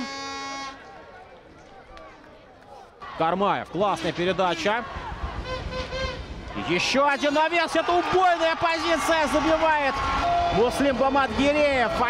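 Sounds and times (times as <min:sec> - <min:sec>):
distant players shouting: 0:04.0 - 0:12.0.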